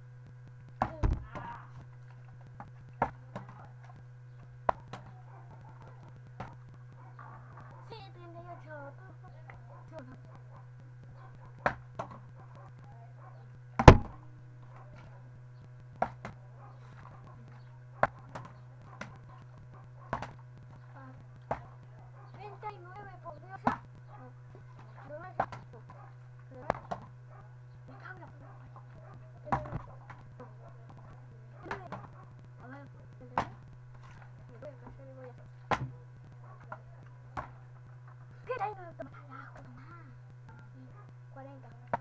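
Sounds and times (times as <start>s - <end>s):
faint voices: 0.0s - 42.0s
steady low hum: 0.0s - 42.0s.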